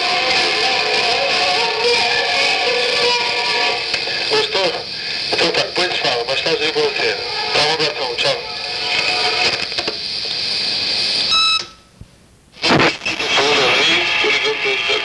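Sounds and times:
indistinct recorded voices: 0.0 - 11.3, 12.6 - 15.0.

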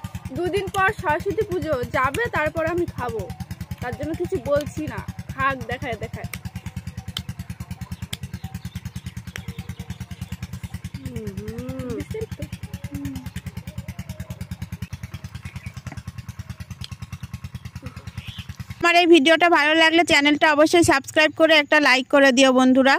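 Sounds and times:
small engine running: 0.0 - 22.9.

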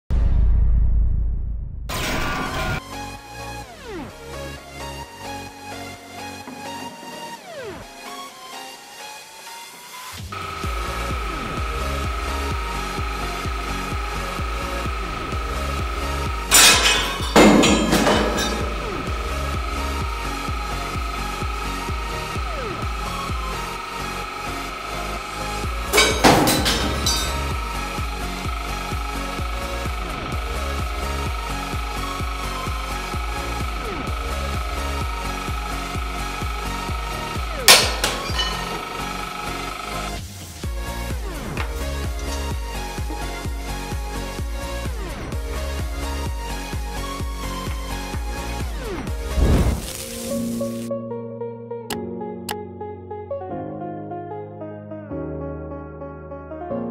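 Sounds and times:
electronic dance music: 10.3 - 49.3
loud sharp cracks of crushing metal: 16.5 - 19.0, 25.8 - 27.6, 37.6 - 39.7.

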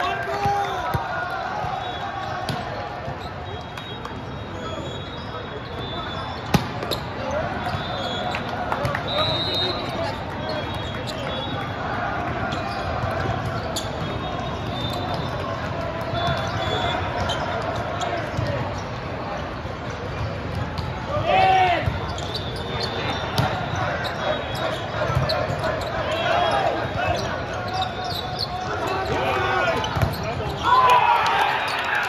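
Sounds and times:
players shouting: 0.0 - 3.6, 4.2 - 19.5, 20.9 - 32.0
volleyballs being hit and bouncing: 0.0 - 4.3, 6.4 - 19.1, 28.8 - 31.8
murmur of many voices: 0.0 - 32.0.

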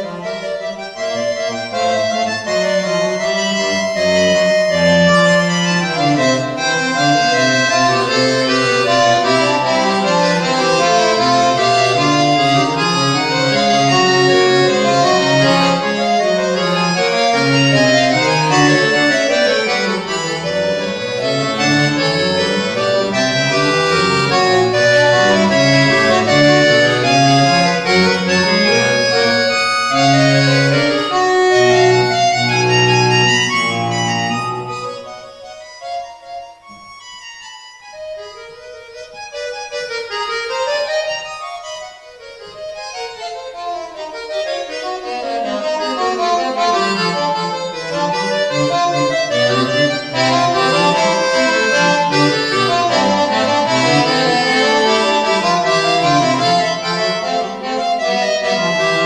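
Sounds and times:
accordion solo: 0.0 - 59.0.

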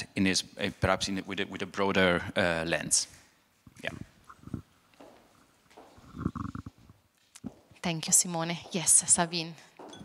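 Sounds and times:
person speaking: 0.1 - 4.6.

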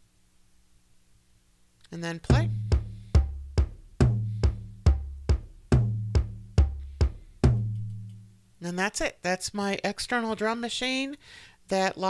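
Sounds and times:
drum machine pattern: 2.3 - 8.4.

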